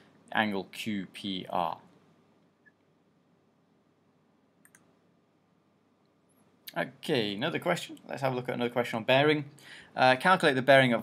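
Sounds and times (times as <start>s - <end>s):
computer mouse double click: 4.6s - 4.9s.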